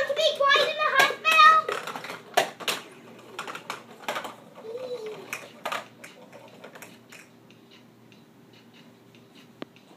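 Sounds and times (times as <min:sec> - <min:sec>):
plastic balls rattling down ramps: 0:00.0 - 0:07.0.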